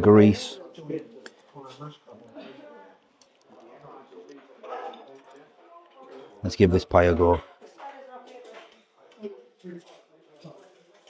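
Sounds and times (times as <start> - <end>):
faint chatter of diners: 0.0 - 11.0.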